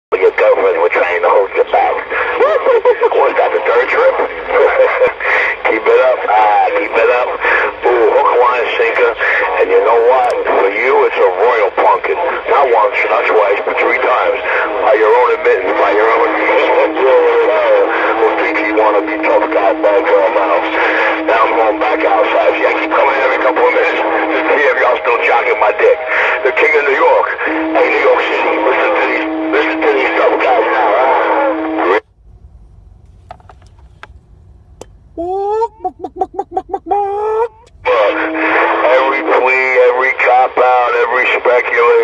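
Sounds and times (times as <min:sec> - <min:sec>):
garbled radio chatter: 0:00.1 - 0:32.0, 0:33.2 - 0:42.0
steady low whistle: 0:03.6 - 0:40.2.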